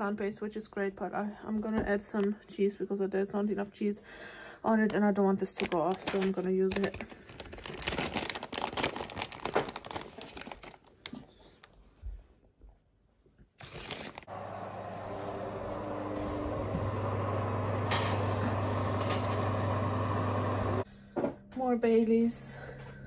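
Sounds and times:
plastic bag crinkling: 0:05.4 - 0:11.3, 0:13.6 - 0:14.3
fan oven humming: 0:14.3 - 0:23.0.

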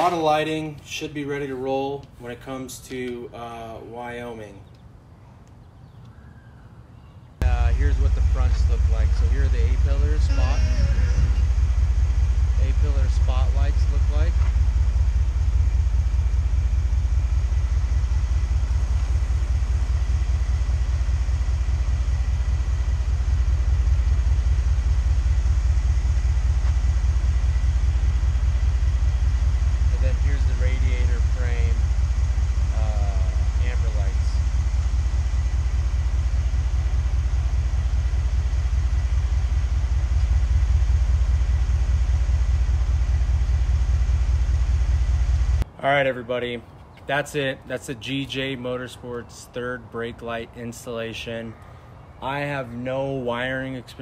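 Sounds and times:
engine idling with low rumble: 0:07.4 - 0:54.0.

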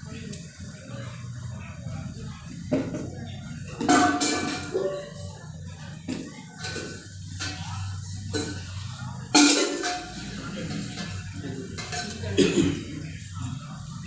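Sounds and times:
metal vessels clanking: 0:03.7 - 0:05.3, 0:06.0 - 0:13.2.

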